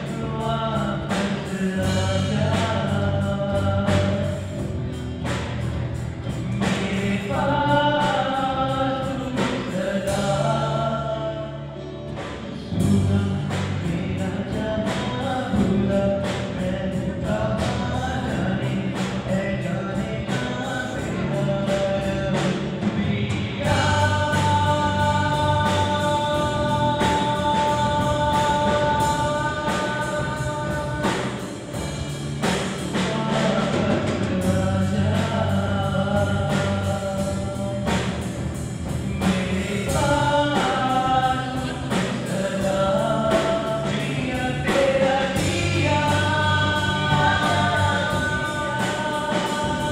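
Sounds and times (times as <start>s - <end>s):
man singing long notes: 0.0s - 5.5s, 6.3s - 49.9s
drum kit beat: 0.0s - 11.2s, 12.1s - 49.9s
acoustic guitar: 0.0s - 49.9s
electric bass: 0.0s - 49.9s
keyboard: 0.0s - 49.9s
live band playing: 0.0s - 49.9s.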